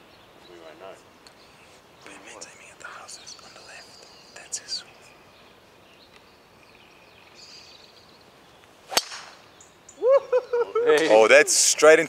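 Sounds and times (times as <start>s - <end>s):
golf ball struck off tee: 8.9s - 9.5s.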